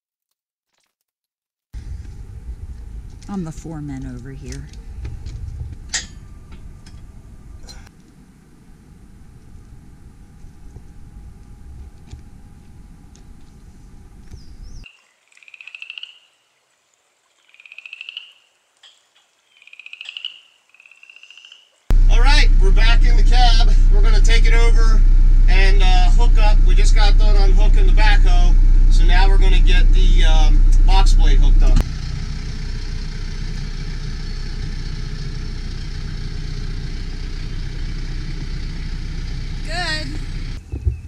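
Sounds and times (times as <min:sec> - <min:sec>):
tractor engine from inside cab: 0:01.8 - 0:07.9, 0:08.6 - 0:14.8, 0:21.9 - 0:40.7
low rumble: 0:01.8 - 0:14.8, 0:21.9 - 0:41.0
frog calling pulsed trill: 0:15.3 - 0:16.4, 0:17.4 - 0:21.7.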